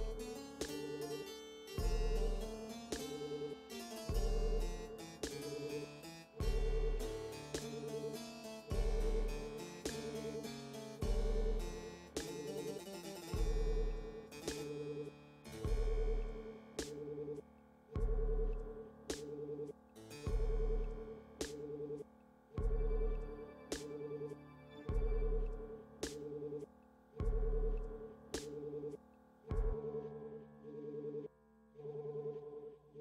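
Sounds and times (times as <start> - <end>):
electronic keyboard loop: 0.0 - 17.4, 18.0 - 22.0, 22.6 - 26.6, 27.2 - 31.2.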